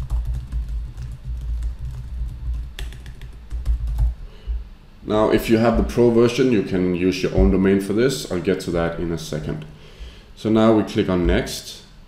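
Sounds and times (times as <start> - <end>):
laptop keyboard typing: 0.0 - 4.2.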